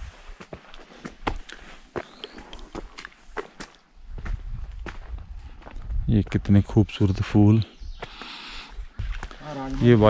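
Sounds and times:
footsteps on stone path: 0.0s - 6.7s, 7.9s - 10.0s.

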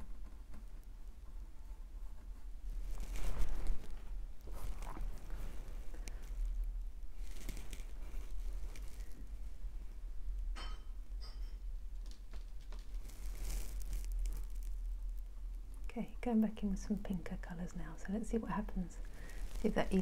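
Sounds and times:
soft rustling and scraping: 0.0s - 20.0s.

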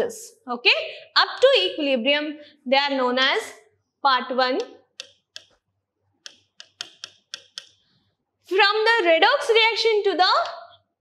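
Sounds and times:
marker pen writing on whiteboard: 4.6s - 8.2s.

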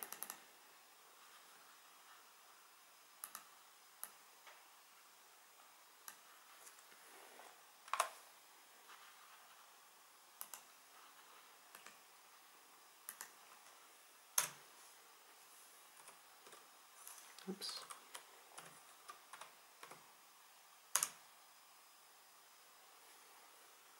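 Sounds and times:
computer mouse and keyboard clicks: 0.0s - 0.4s, 3.2s - 4.2s, 6.0s - 6.9s, 7.9s - 8.2s, 10.4s - 10.8s, 11.7s - 12.0s, 13.0s - 13.8s, 14.4s - 14.6s, 16.0s - 20.0s, 20.9s - 21.2s.

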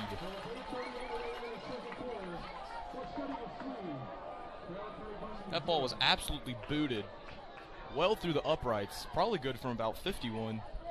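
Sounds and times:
stadium crowd calling out: 0.0s - 10.9s.

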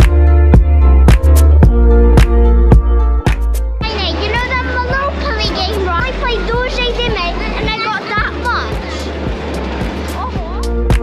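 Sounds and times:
music with strong drum hits: 0.0s - 3.8s, 8.8s - 11.0s
pulsing beat: 0.0s - 11.0s
child's voice: 3.8s - 9.1s.

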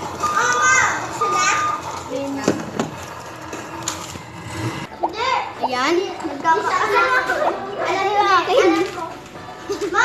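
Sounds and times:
children talking: 0.0s - 3.2s, 4.8s - 10.0s.

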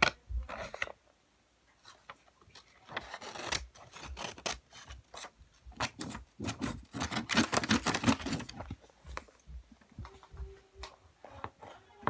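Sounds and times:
book pages riffled and flicked: 1.8s - 9.5s.

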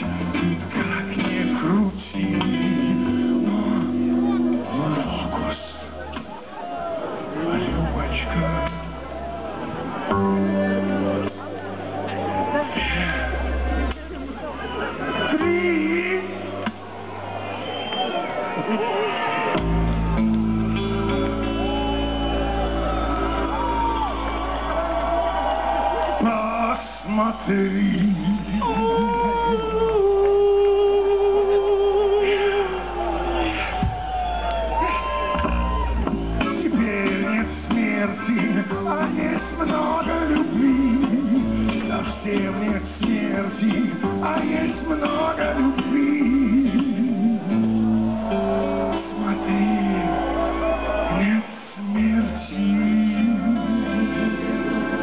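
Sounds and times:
double bass: 0.0s - 6.4s, 7.5s - 17.0s, 19.6s - 26.0s, 35.1s - 55.0s
electric guitar: 0.0s - 15.6s, 18.4s - 26.2s, 26.8s - 55.0s
people whooping: 4.7s - 8.1s, 9.0s - 15.5s, 16.5s - 36.6s, 47.1s - 52.8s
plucked double bass: 35.4s - 50.2s.

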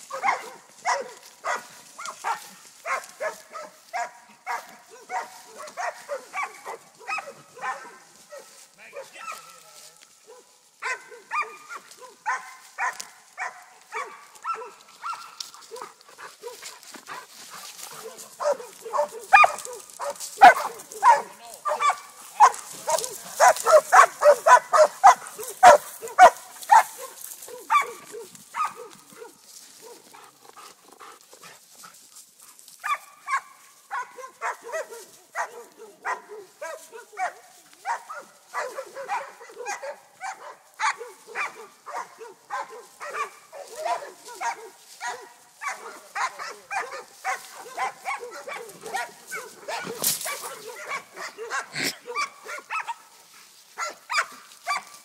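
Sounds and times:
dogs barking: 0.0s - 31.5s, 32.8s - 55.0s.

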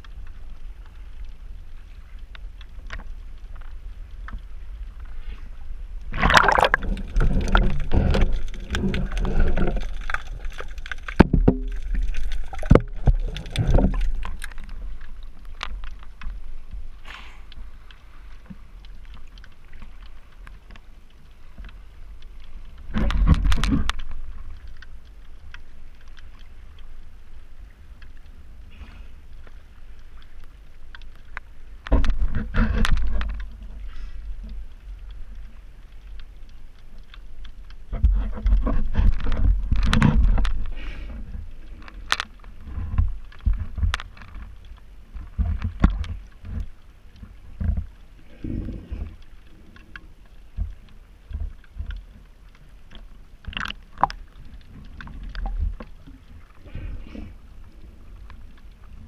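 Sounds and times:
sea water sloshing and splashing: 0.0s - 59.0s.

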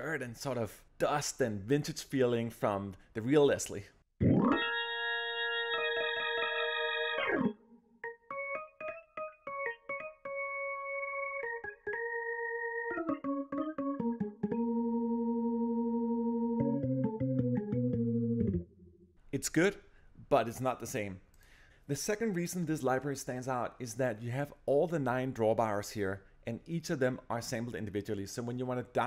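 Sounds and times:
organ chords: 4.2s - 19.0s
low bass organ note: 12.4s - 18.8s.

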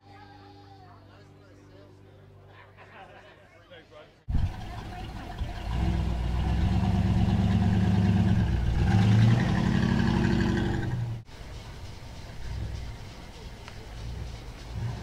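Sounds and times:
car engine running low: 4.3s - 11.3s.

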